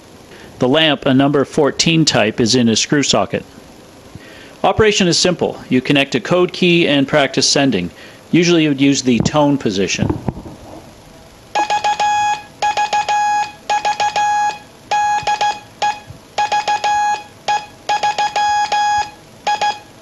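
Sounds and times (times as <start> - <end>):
morse code tone: 11.5 - 20.0.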